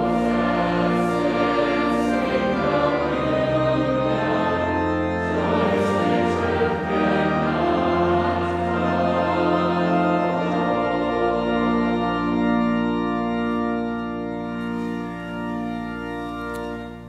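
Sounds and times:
congregation singing: 0:00.0 - 0:17.0
organ chords: 0:00.0 - 0:17.0.

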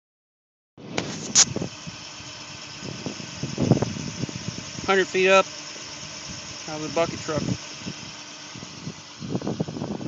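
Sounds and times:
truck engine running: 0:00.8 - 0:10.0.

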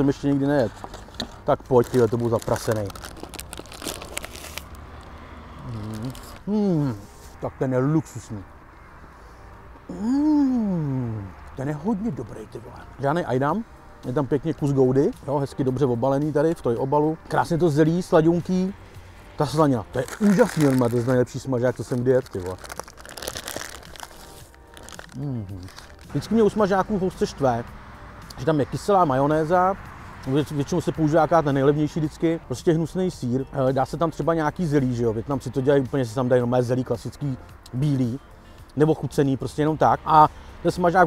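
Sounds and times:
paper wrapper crinkling: 0:00.7 - 0:04.8, 0:05.7 - 0:06.4, 0:19.9 - 0:26.1
biting into a sandwich: 0:05.6 - 0:06.4
man humming mm: 0:05.6 - 0:07.1, 0:09.9 - 0:11.3.

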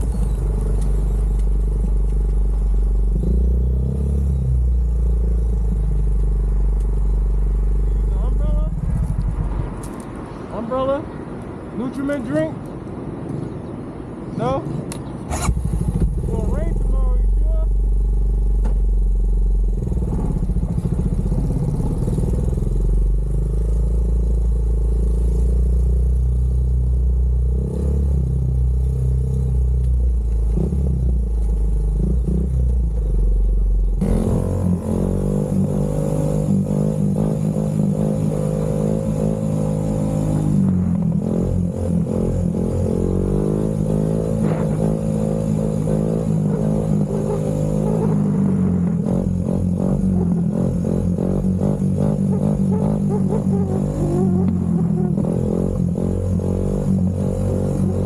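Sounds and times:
atv engine running: 0:17.7 - 0:26.3.

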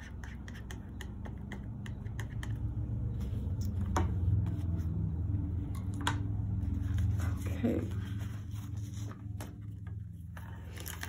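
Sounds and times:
palette knife tapping on plastic: 0:00.0 - 0:02.8
low steady hum: 0:00.0 - 0:11.0.

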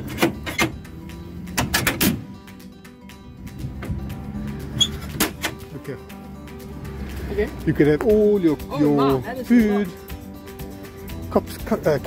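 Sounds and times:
clunks and rattles: 0:00.0 - 0:02.4, 0:03.6 - 0:05.7
background music: 0:00.0 - 0:12.0.

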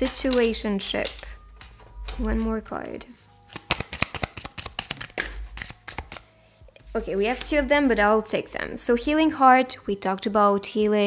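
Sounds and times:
cards clicking while shuffled: 0:00.0 - 0:02.4, 0:03.5 - 0:06.3.

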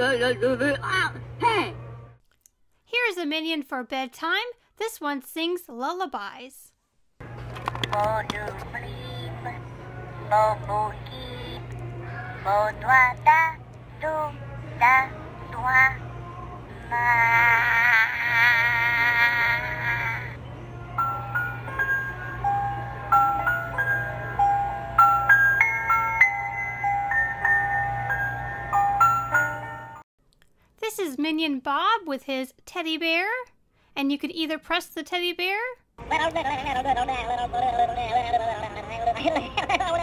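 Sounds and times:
toy high-pitched sing-song voice: 0:08.0 - 0:09.6, 0:10.2 - 0:11.7, 0:12.4 - 0:16.1, 0:16.7 - 0:20.4
high wavering toy voice singing: 0:08.0 - 0:29.7
chiming lullaby melody: 0:20.9 - 0:30.1.

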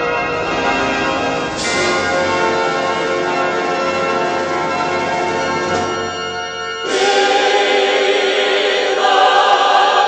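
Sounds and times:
bells ringing together: 0:00.0 - 0:10.0.

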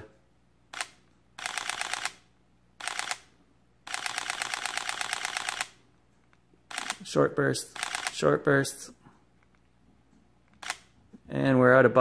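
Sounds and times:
camera shutter rapid clicks: 0:00.7 - 0:03.3, 0:03.9 - 0:05.8, 0:06.7 - 0:07.1, 0:07.7 - 0:08.3, 0:10.6 - 0:10.9.

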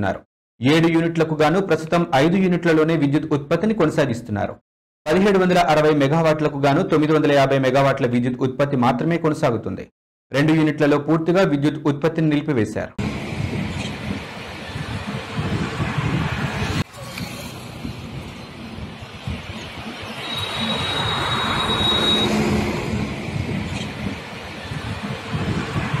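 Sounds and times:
road traffic noise: 0:13.0 - 0:26.0
vehicle passing with high whine: 0:13.0 - 0:26.0.

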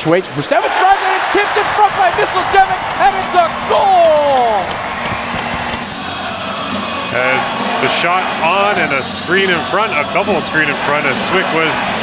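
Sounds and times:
crowd noise in arena: 0:00.0 - 0:12.0
music: 0:02.8 - 0:12.0.

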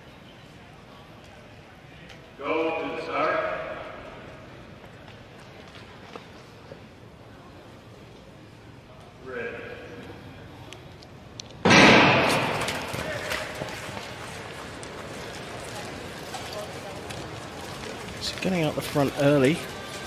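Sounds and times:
starting gun bang: 0:11.6 - 0:13.2.

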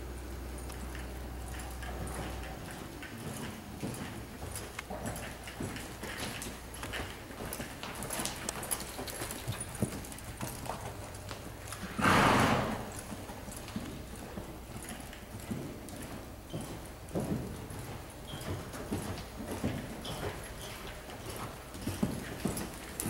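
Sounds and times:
horse hooves walking on sand: 0:00.0 - 0:23.0.

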